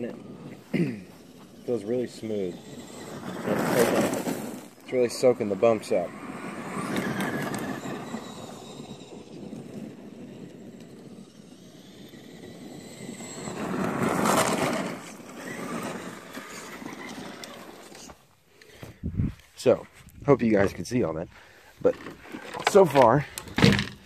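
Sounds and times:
electric motor whine: 0.0 - 18.2
tyres crunching on gravel: 0.0 - 24.0.

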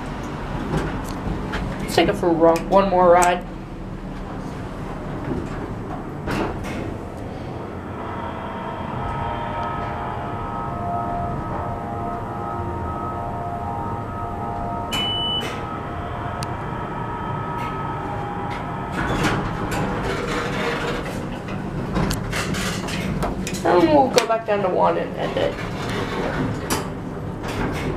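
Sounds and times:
elevator pump motor hum: 0.0 - 27.9
sliding doors clattering: 3.9 - 7.8, 14.5 - 27.9
short high beep: 14.9 - 15.6.

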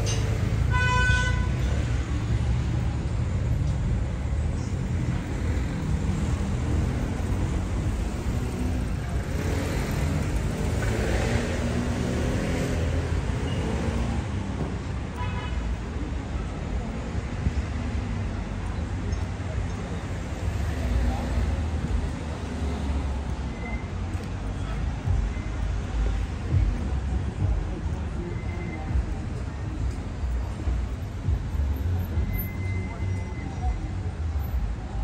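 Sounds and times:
street traffic rumbling: 0.0 - 35.0
car horn toot: 0.7 - 1.6.

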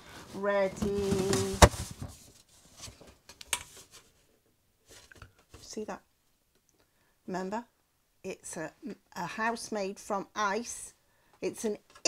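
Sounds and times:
card and tray rustling: 0.6 - 4.1.

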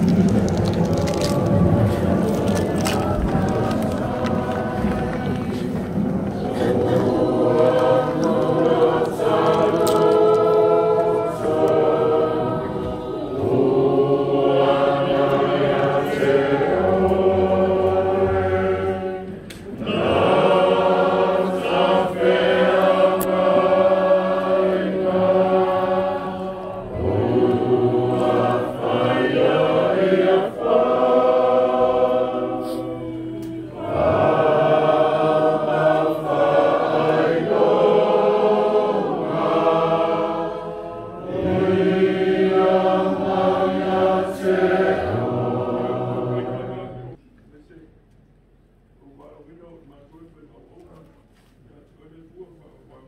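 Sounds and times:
congregation singing a hymn: 0.0 - 47.2.

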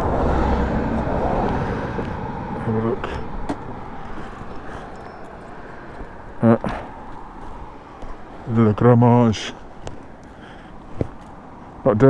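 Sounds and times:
outdoor background noise: 0.0 - 12.0
faint knocks and scuffs: 10.9 - 11.4.

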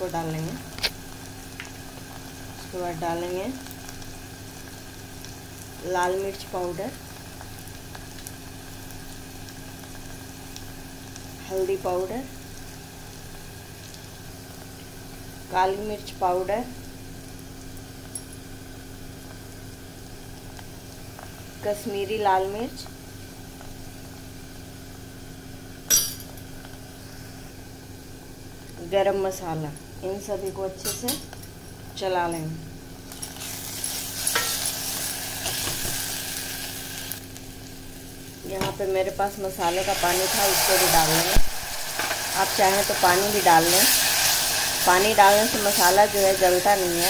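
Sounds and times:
woman's voice: 0.0 - 0.6, 2.7 - 3.6, 5.8 - 7.0, 11.4 - 12.3, 15.5 - 16.8, 21.6 - 22.9, 28.8 - 31.2, 32.0 - 32.7, 38.4 - 41.4, 42.4 - 44.0, 44.8 - 47.0
low mechanical hum: 0.0 - 47.0
onions sizzling in oil: 0.0 - 47.0.

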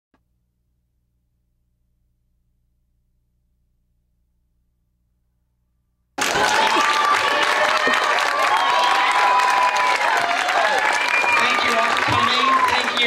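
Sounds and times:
audience applause: 6.2 - 13.0.

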